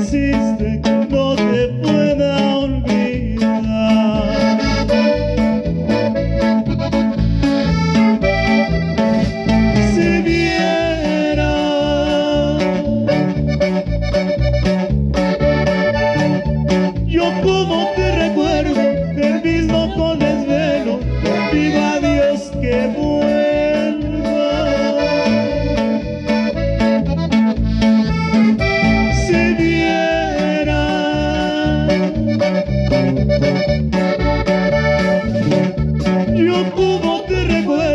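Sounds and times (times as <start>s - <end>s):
accordion melody: 0.0s - 37.9s
bass: 0.0s - 37.9s
drum kit steady beat: 0.0s - 37.9s
guitar: 0.0s - 37.9s.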